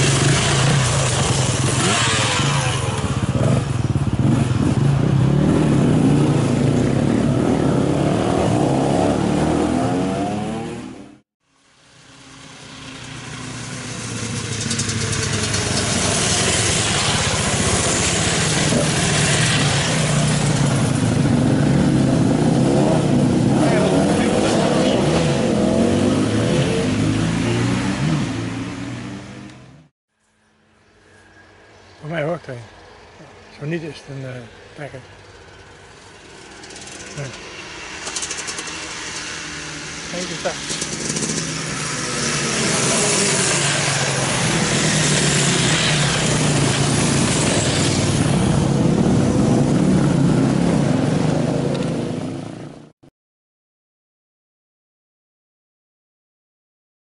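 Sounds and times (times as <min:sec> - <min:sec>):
motorcycles revving past: 0:00.0 - 0:11.2, 0:12.0 - 0:29.9, 0:35.2 - 0:52.9.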